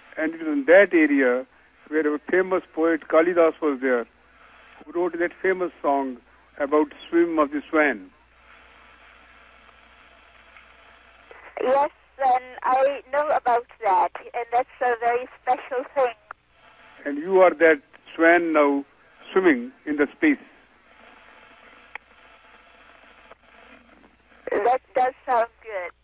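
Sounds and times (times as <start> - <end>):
radio link hiss: 0.0 - 26.0.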